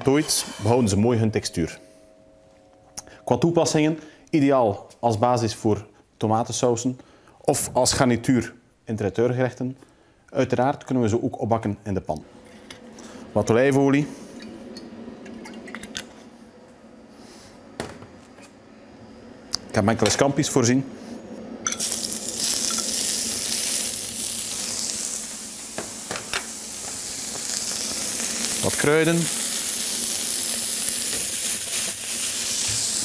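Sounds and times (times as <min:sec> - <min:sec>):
scampi sizzling in a frying pan: 0:21.7 - 0:33.0.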